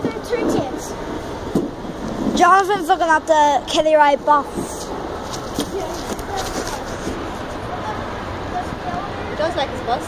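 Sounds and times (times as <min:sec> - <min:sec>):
faint distant voices: 0:00.0 - 0:10.0
steady murmur: 0:00.0 - 0:10.0.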